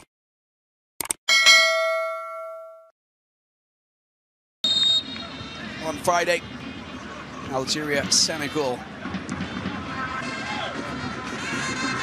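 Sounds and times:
bright bell ding: 0:01.3 - 0:02.9
football crowd: 0:04.7 - 0:12.0.

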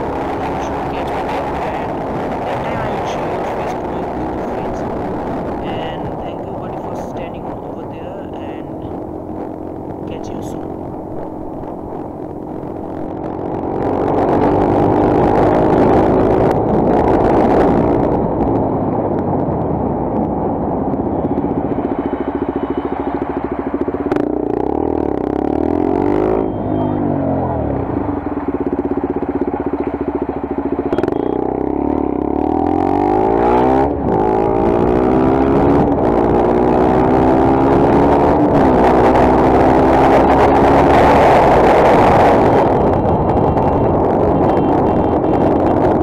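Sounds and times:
wind noise: 0:00.0 - 0:46.0
motorcycle engine revving and upshifting: 0:21.0 - 0:46.0.

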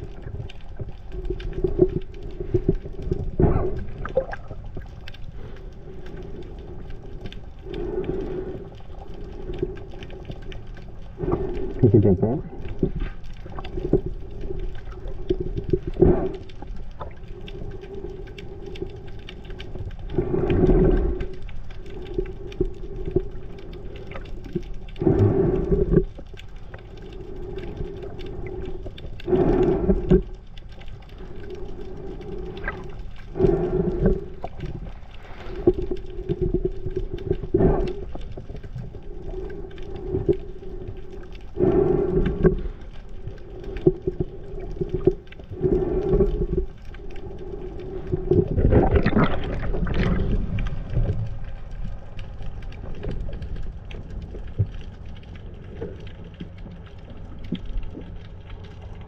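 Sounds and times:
steady low underwater hum: 0:00.0 - 0:59.0.

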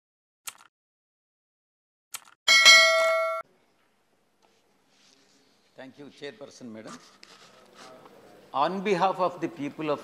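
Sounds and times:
bell-like notification ding: 0:02.5 - 0:03.4.

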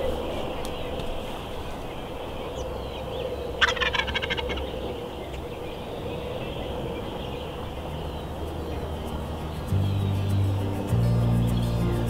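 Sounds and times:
turkey gobbling: 0:03.6 - 0:04.6.

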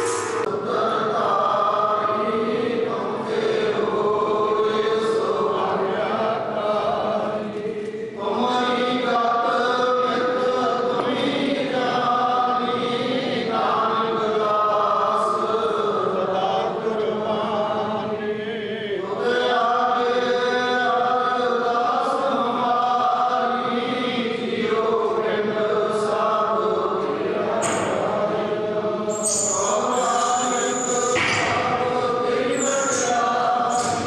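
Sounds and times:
man chanting a prayer: 0:00.4 - 0:34.0.

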